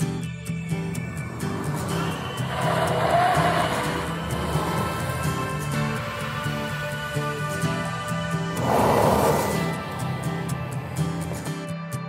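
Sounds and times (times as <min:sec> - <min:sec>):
background music with steady beat: 0:00.0 - 0:12.0
car driving past: 0:01.0 - 0:11.5.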